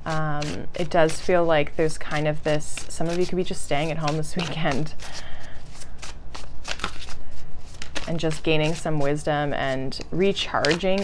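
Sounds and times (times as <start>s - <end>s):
cards being shuffled: 2.8s - 11.0s.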